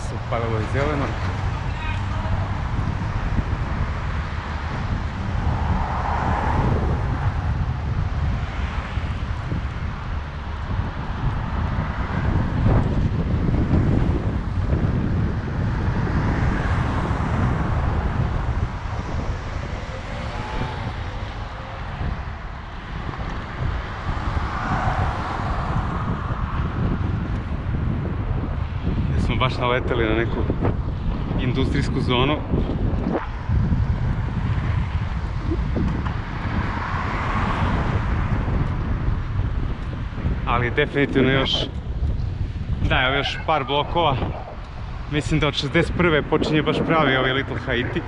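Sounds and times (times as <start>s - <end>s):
road traffic: 0.0s - 48.0s
wind buffeting microphone: 0.0s - 48.0s.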